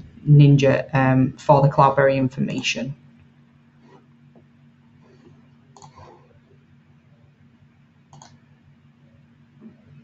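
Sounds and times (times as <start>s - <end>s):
faint low hum: 0.0s - 10.0s
computer mouse clicks: 5.2s - 6.3s, 8.1s - 8.4s.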